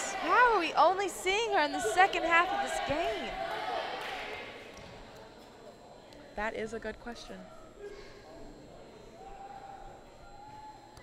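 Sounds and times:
crowd noise echoing in gymnasium: 0:00.0 - 0:11.0.

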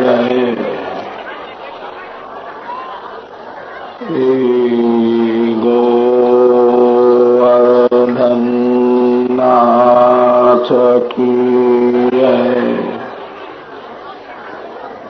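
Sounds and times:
man chanting in long held notes: 0:00.0 - 0:01.0, 0:04.0 - 0:13.2.

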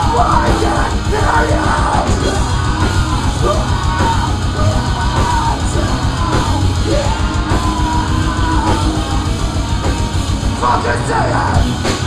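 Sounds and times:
person singing: 0:00.0 - 0:11.8
rock band playing live: 0:00.0 - 0:12.0.

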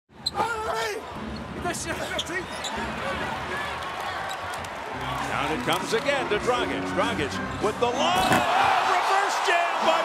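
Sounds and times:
arena crowd noise: 0:00.2 - 0:10.0.

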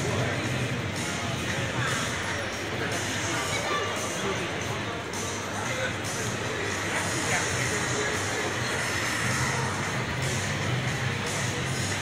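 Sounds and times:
loud roar from loudspeakers: 0:06.8 - 0:12.0.

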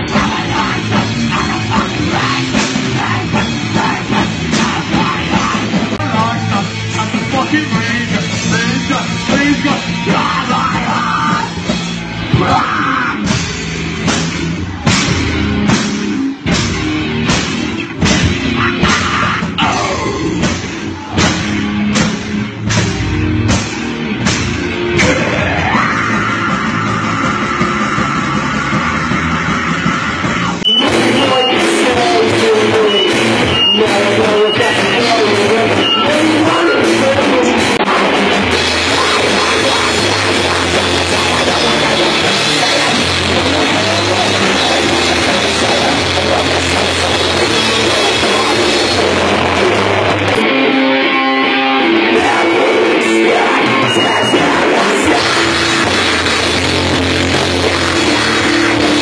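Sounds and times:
live heavy metal band: 0:00.0 - 0:59.0.

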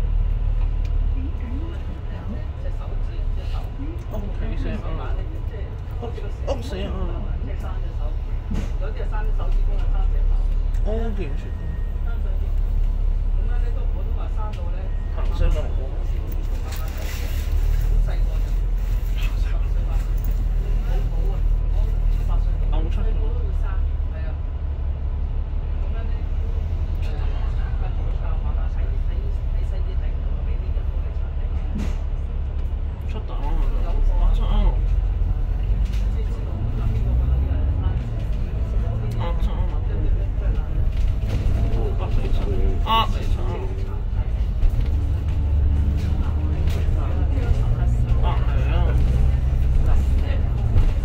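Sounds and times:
bus diesel engine idling: 0:00.0 - 0:51.0
faint voices: 0:00.4 - 0:51.0.

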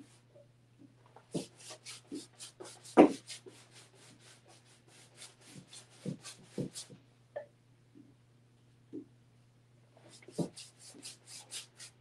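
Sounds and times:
paintbrush scrubbing on canvas: 0:01.3 - 0:07.0, 0:10.0 - 0:12.0.

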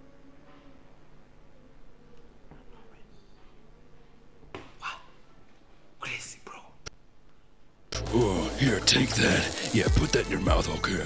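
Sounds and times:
person whispering: 0:02.5 - 0:03.6, 0:04.8 - 0:05.2, 0:06.0 - 0:06.9.

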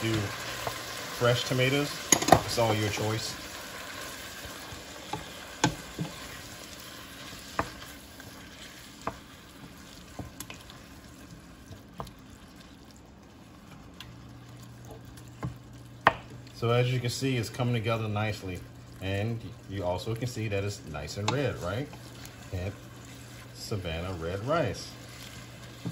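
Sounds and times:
food sizzling in a pot: 0:00.0 - 0:25.9.

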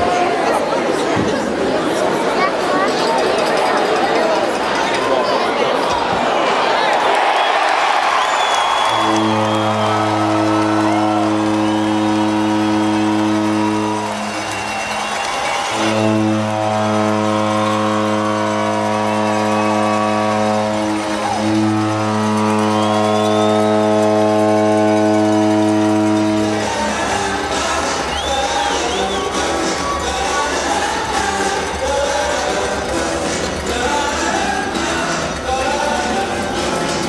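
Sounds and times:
crowd noise: 0:00.0 - 0:37.0
arena goal horn blasts: 0:08.6 - 0:29.6.

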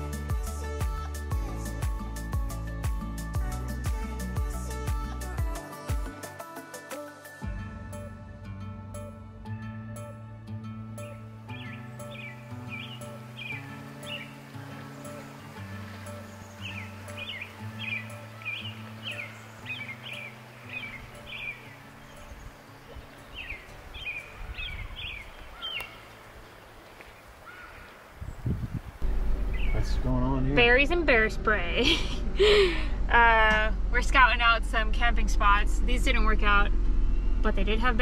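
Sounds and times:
soft background music: 0:00.0 - 0:26.6
songbird chirping: 0:10.9 - 0:31.6
low rumble: 0:28.4 - 0:38.0.

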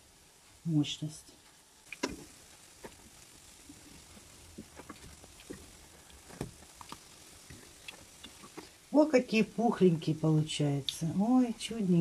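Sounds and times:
pancakes sizzling in oil: 0:00.0 - 0:12.0.

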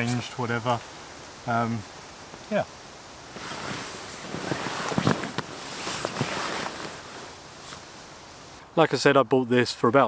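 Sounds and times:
rustling of tent fabric and mat: 0:00.0 - 0:08.6.

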